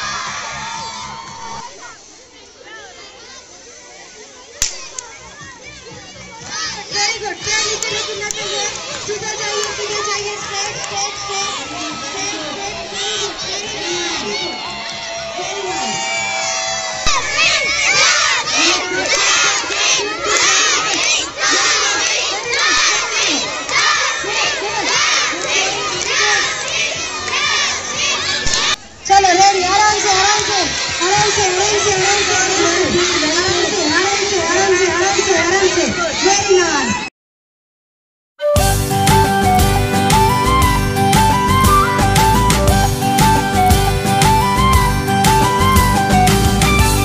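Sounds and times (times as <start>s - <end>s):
children's voices: 1.0s - 37.1s.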